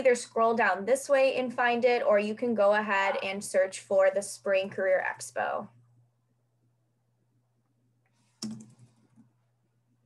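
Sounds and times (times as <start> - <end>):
keyboard typing: 8.4 - 9.3.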